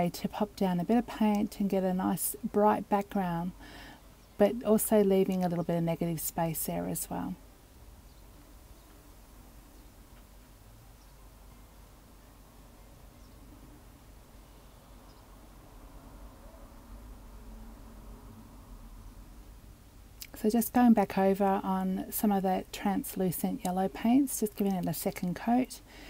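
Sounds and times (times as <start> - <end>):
faint hiss: 3.4 - 20.7
low hum: 11.4 - 20.0.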